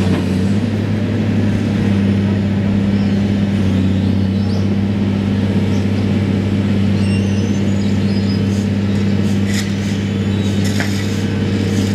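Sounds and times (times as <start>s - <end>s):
diesel engine droning: 0.0s - 11.9s.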